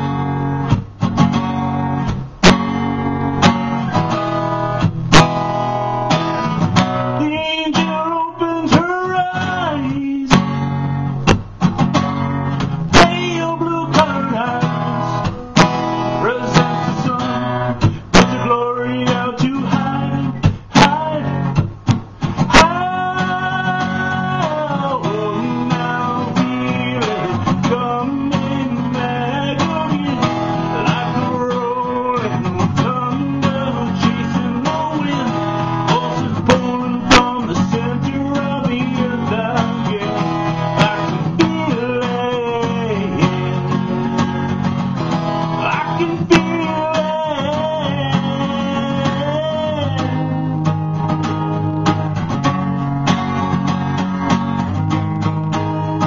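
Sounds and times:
strummed acoustic guitar: 0:00.0 - 0:56.0
man singing: 0:07.0 - 0:10.9, 0:12.8 - 0:21.6, 0:22.4 - 0:50.7.

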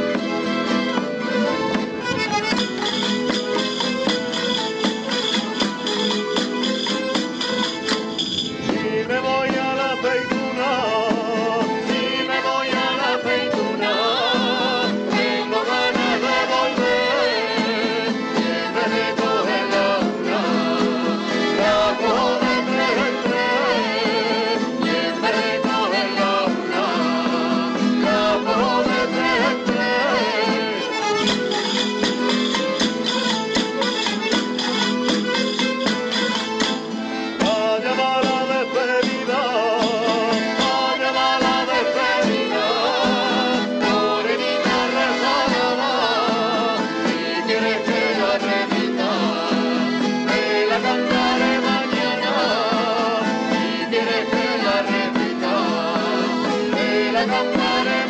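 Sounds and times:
folk ensemble of plucked strings: 0:00.0 - 0:58.0
guitars: 0:00.0 - 0:58.0
percussive beat: 0:00.0 - 0:58.0
sharp percussive strokes: 0:01.8 - 0:09.0, 0:28.0 - 0:39.1.

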